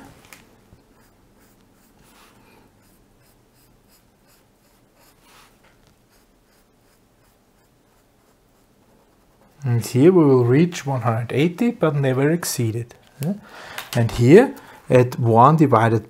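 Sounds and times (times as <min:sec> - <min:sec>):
felt-tip pen scratching paper: 0:00.8 - 0:09.6.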